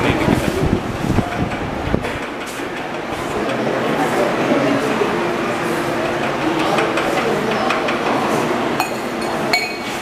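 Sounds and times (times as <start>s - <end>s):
steady hiss-like background noise: 0.0s - 10.0s.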